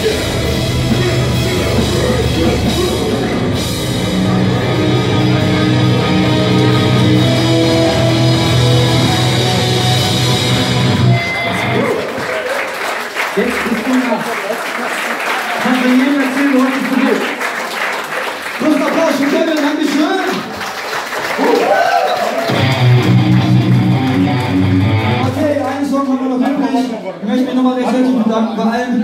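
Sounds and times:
hardcore band playing: 0:00.0 - 0:12.3, 0:22.5 - 0:26.0
audience applauding and cheering: 0:04.4 - 0:25.9.

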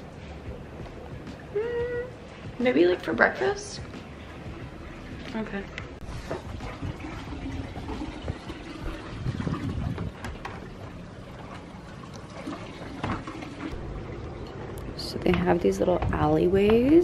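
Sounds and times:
water trickling and lapping: 0:00.0 - 0:17.0.

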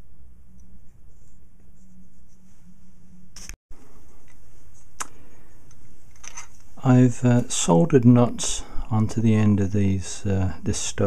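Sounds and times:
steady low hum: 0:00.0 - 0:11.0.

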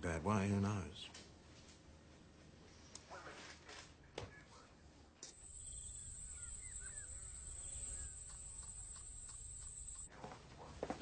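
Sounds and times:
bird chirps: 0:05.4 - 0:10.1.

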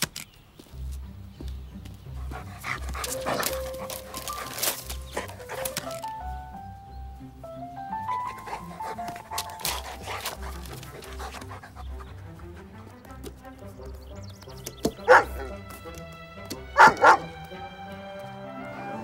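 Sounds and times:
film score music: 0:00.2 - 0:19.0
dog barking loudly: 0:02.2 - 0:06.1, 0:08.1 - 0:12.0, 0:14.9 - 0:15.6, 0:16.7 - 0:17.4.

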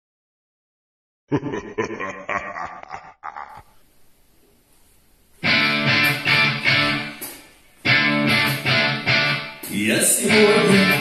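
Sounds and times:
guitar chords strummed: 0:05.4 - 0:11.0.

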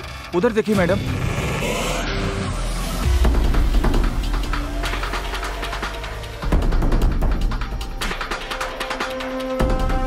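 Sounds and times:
low rumbling drone: 0:01.0 - 0:08.0.

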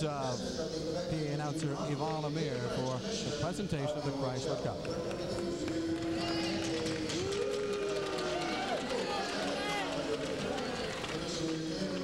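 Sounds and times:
crowd applause: 0:04.8 - 0:12.0.

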